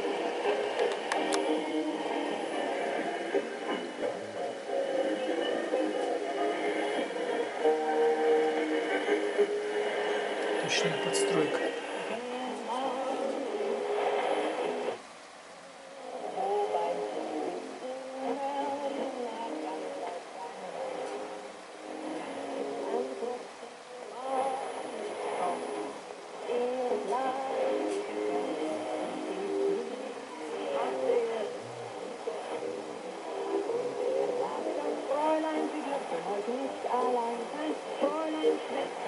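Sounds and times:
music on am radio: 0:00.0 - 0:39.0.

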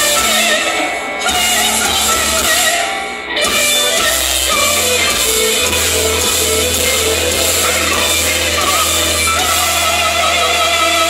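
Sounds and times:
electric guitar: 0:00.0 - 0:11.0
person singing with vibrato: 0:00.0 - 0:11.0
sustained keyboard chords: 0:03.7 - 0:11.0.

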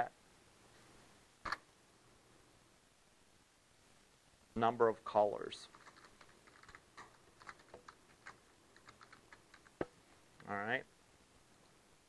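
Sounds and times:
typing on computer keyboard: 0:05.7 - 0:09.9.

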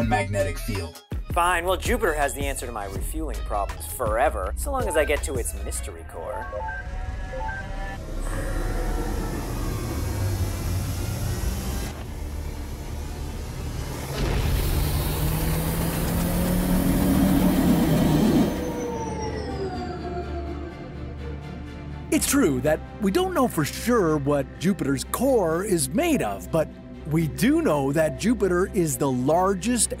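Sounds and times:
background music: 0:00.0 - 0:11.3, 0:17.7 - 0:30.0
spaceship engine rushing: 0:05.8 - 0:21.4
low rising hum: 0:06.1 - 0:22.1.

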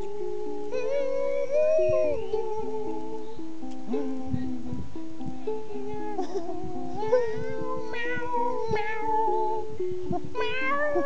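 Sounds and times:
ukulele playing: 0:00.0 - 0:11.0
person singing in meows: 0:00.7 - 0:03.3, 0:05.8 - 0:09.7, 0:10.3 - 0:11.0.

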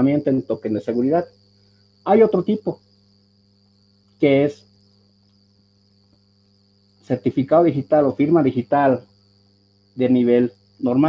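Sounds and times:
high-pitched whine: 0:00.0 - 0:03.0, 0:06.9 - 0:09.2, 0:10.0 - 0:11.0
faint steady hum: 0:00.0 - 0:11.0.

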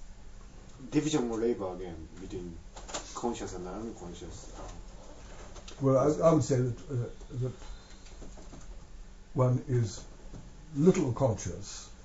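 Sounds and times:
man speaking slowly: 0:05.8 - 0:07.6, 0:09.4 - 0:10.1.

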